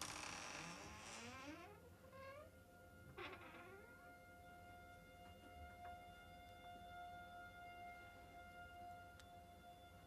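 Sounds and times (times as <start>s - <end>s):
door hinges creaking: 0.0s - 2.5s.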